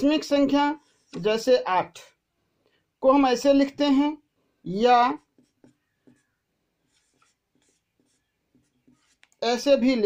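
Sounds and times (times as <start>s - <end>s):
marker scratching on whiteboard: 0.0s - 2.2s, 3.8s - 10.0s
person speaking: 0.0s - 2.2s, 3.0s - 6.2s, 6.8s - 10.0s.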